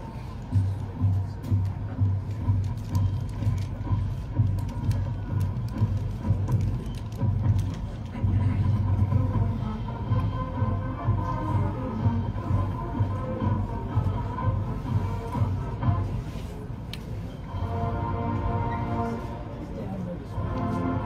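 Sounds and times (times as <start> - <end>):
bass drums beating: 0.5 - 16.1
marching band playing: 17.5 - 19.5.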